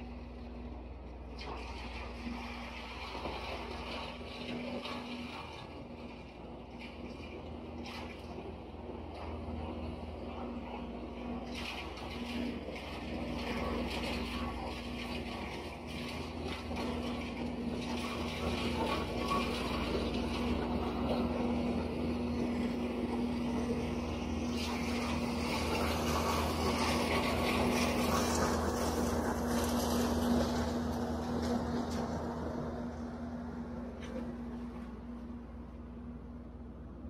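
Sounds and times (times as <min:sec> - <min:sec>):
wood chipper engine running: 0:12.3 - 0:35.9.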